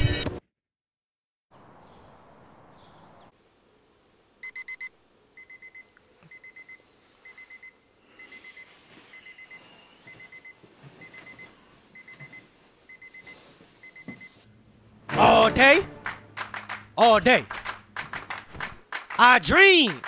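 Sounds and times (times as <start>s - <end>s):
alarm clock beeping: 4.4s - 5.8s.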